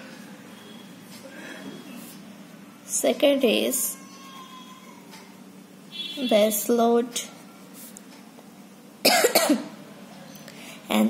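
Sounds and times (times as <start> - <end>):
woman coughing: 9.0 - 9.7.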